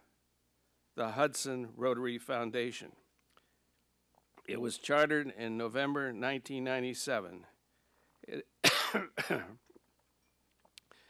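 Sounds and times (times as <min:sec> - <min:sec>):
man coughing: 0:08.6 - 0:09.6.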